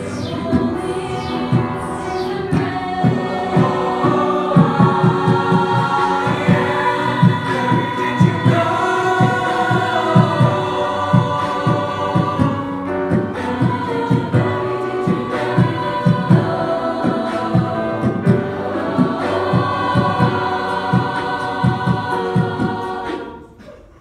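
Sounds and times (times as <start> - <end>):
low pulsing beat: 0.0 - 23.1
lead voice on a microphone: 0.0 - 23.8
mixed choir singing a cappella: 0.0 - 24.0.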